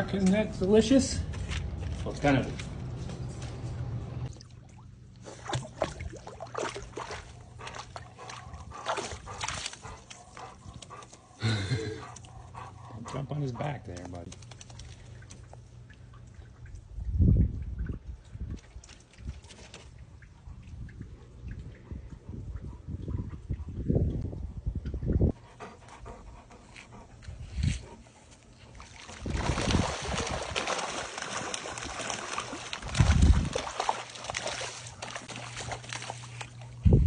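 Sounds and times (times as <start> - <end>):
water sloshing and splashing: 0.1 - 11.4, 12.0 - 24.2, 27.9 - 37.0.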